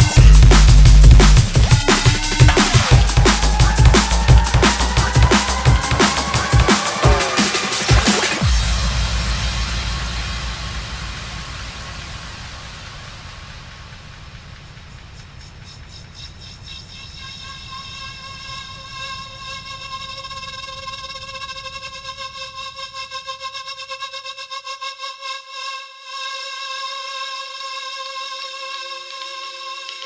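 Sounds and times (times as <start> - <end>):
low rumble: 0.0 - 6.7, 8.4 - 16.2
noise wash: 0.0 - 23.3.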